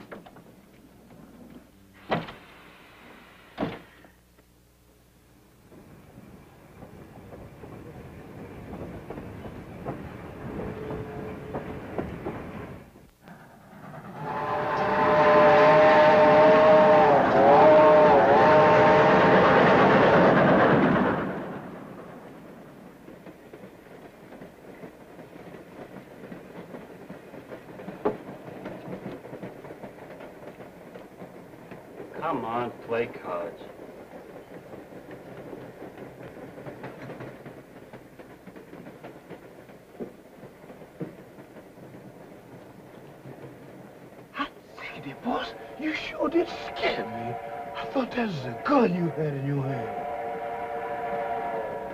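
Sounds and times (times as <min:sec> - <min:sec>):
steam train running on track: 0:00.0 - 0:04.3, 0:05.1 - 0:51.9
railway car door shutting: 0:02.0 - 0:04.2, 0:05.7 - 0:14.2
steam locomotive chime whistle: 0:10.4 - 0:11.8, 0:14.2 - 0:19.7, 0:45.2 - 0:51.9.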